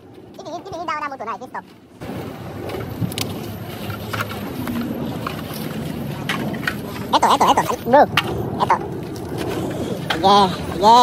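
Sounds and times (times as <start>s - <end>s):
steady outdoor rumble: 0.0s - 11.0s.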